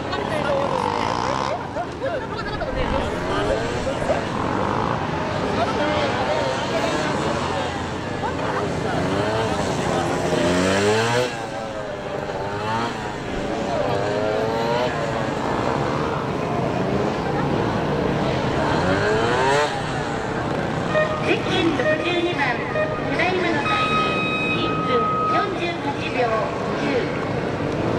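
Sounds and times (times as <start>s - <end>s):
motorcycle engine revving: 0.3s - 1.8s, 2.4s - 24.6s.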